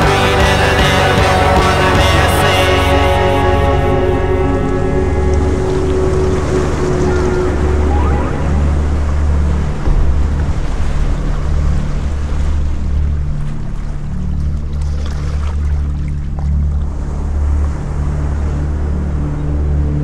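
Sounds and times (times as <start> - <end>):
music track: 0.0 - 14.7
waves breaking: 0.0 - 20.0.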